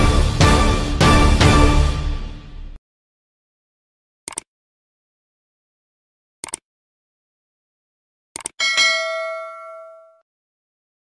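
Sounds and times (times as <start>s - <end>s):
metallic bell ding: 8.6s - 10.2s.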